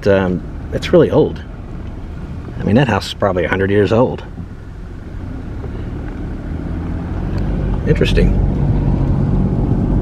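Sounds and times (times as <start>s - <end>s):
car engine and tyre noise: 0.0s - 10.0s.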